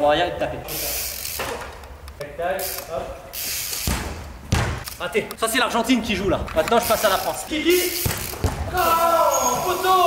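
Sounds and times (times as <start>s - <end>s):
football being kicked: 3.9s - 4.8s, 8.0s - 8.7s.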